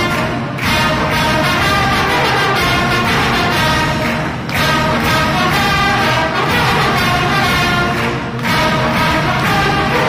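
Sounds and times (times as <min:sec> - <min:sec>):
brass band playing chords: 0:00.0 - 0:10.0.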